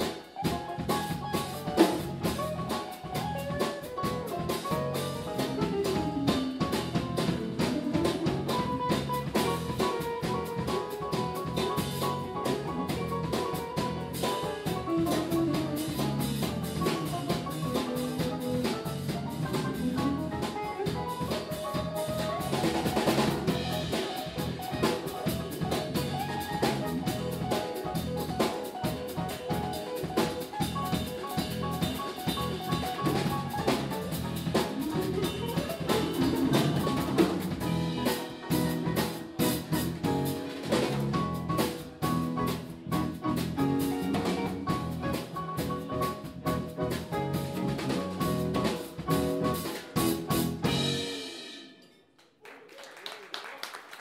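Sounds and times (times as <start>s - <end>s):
saxophone: 0.0s - 50.8s
electric bass: 0.0s - 51.5s
electric guitar: 0.0s - 51.5s
drum kit: 0.0s - 52.2s
piano: 0.0s - 52.6s.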